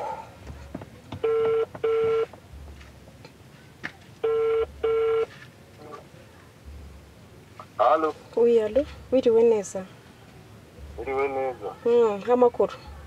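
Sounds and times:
telephone ringback tone: 0:01.2 - 0:02.3, 0:04.2 - 0:05.3.

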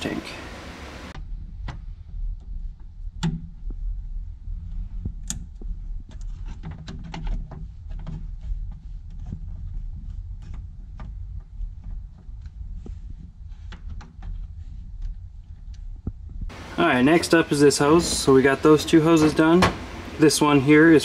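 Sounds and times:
low steady hum: 0:00.0 - 0:21.0
hands handling a rubber hose: 0:05.1 - 0:16.1.

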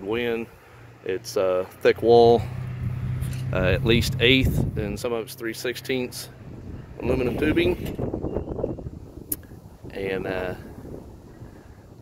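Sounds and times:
wind buffeting microphone: 0:02.7 - 0:05.2, 0:06.3 - 0:12.0.

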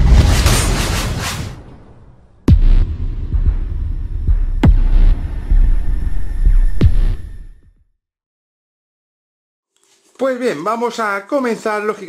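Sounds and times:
throbbing bass pulse: 0:02.5 - 0:07.7.

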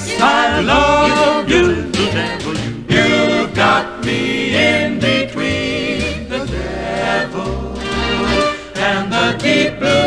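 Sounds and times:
vocal choir singing in close harmony: 0:00.0 - 0:10.0.

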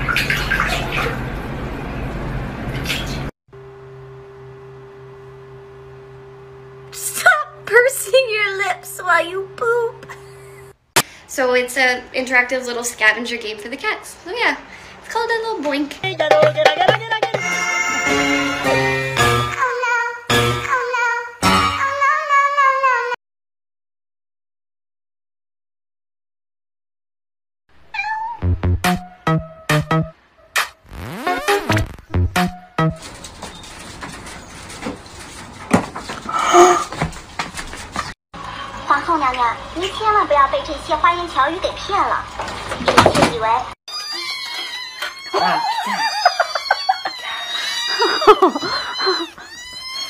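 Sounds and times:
water splashing in a metal sink: 0:00.0 - 0:01.5, 0:41.3 - 0:43.7
cat meowing: 0:27.8 - 0:28.4, 0:43.9 - 0:50.0.

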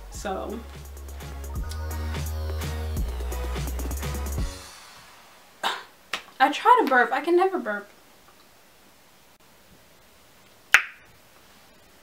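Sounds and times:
sharp snap: 0:10.7 - 0:11.0.

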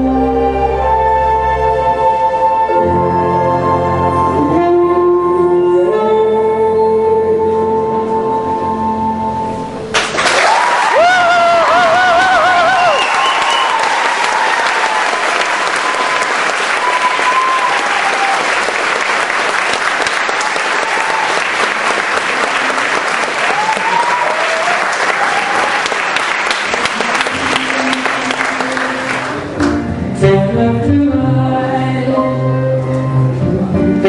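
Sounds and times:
backing music: 0:00.0 - 0:10.2, 0:26.4 - 0:34.0
audience applauding: 0:09.9 - 0:29.8.

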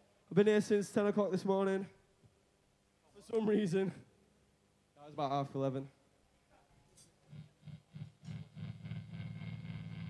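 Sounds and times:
electric guitar through amplifier: 0:07.3 - 0:10.0.

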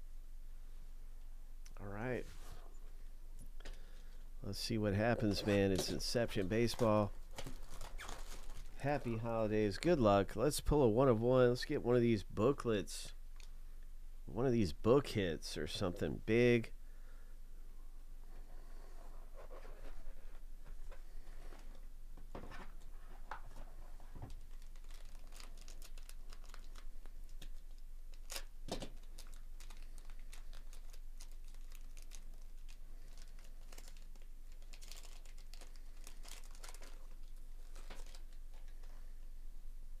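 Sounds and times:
plastic wrapping being torn and crinkled: 0:06.2 - 0:09.1, 0:24.2 - 0:38.9.

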